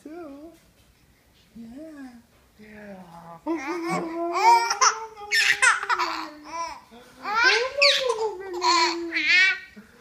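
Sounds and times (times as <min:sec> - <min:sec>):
baby laughing: 0:03.6 - 0:09.8.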